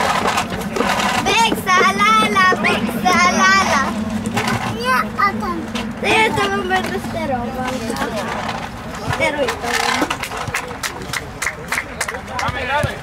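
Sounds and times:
steady low hum: 0.0 - 9.0
players shouting: 0.6 - 7.2.

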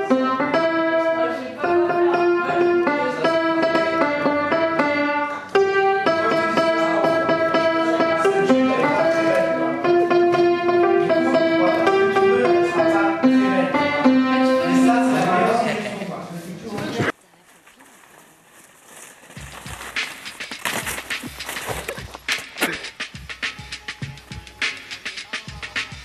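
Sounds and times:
upright piano melody: 0.0 - 15.8.

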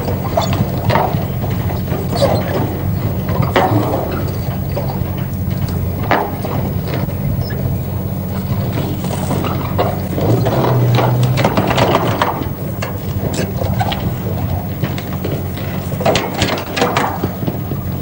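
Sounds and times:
steady low drone: 0.0 - 18.0
metallic clanks and scraping: 8.3 - 17.5.

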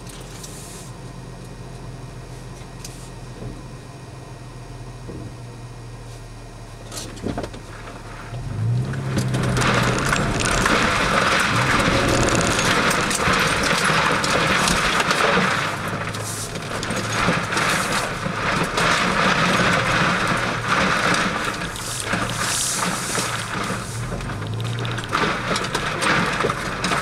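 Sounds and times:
truck engine pulling: 6.9 - 27.0
tyres crunching over gravel: 7.7 - 27.0.

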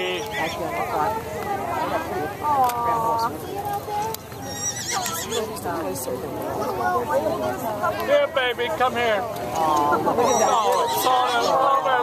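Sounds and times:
people talking: 0.0 - 12.0
pony whinnying: 4.4 - 5.5, 10.2 - 11.8.

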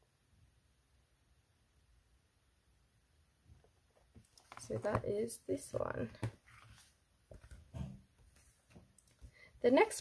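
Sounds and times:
book knocks and rustles: 6.1 - 8.9.

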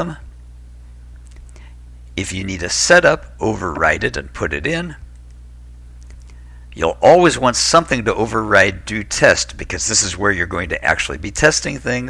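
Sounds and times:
person speaking: 0.0 - 0.3, 1.2 - 5.4, 6.0 - 12.0
steady low hum: 0.0 - 12.0.

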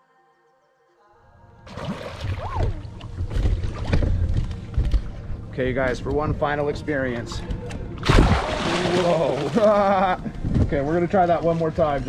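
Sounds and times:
background music: 0.0 - 10.5
water sloshing and splashing: 1.6 - 5.4, 7.6 - 10.5
wind buffeting microphone: 10.0 - 11.2.

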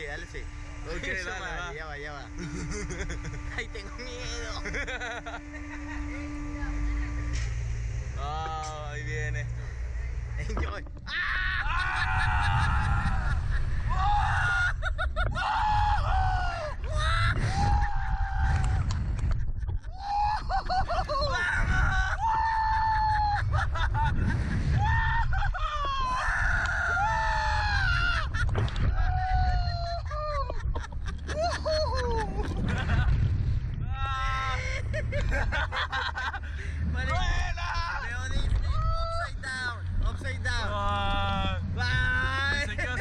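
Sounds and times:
low mechanical rumble: 0.0 - 43.0
steady hum: 0.0 - 43.0
men screaming: 11.1 - 19.0, 19.8 - 32.5, 33.9 - 38.1.

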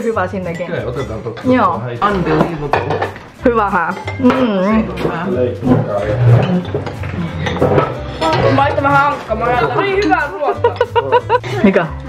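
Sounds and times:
cutlery clinking on bowl and plates: 0.5 - 11.0
murmured voices: 4.2 - 10.2.

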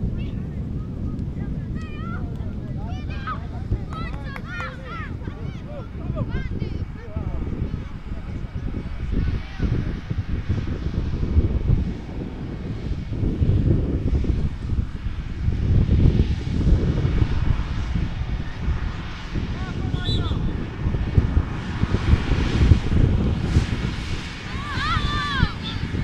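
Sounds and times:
wind buffeting microphone: 0.0 - 26.0
distant voice shouting: 24.5 - 26.0.

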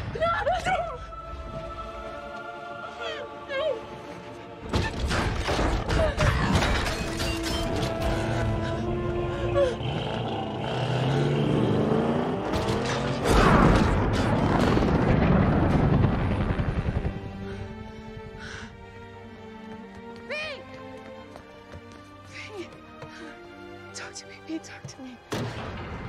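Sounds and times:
film score music: 0.0 - 26.0
booming and rumbling effects: 12.4 - 18.4.

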